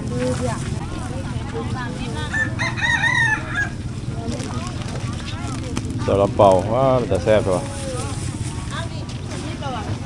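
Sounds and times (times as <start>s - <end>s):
faint market chatter: 0.0s - 10.0s
rooster crowing: 2.2s - 3.9s.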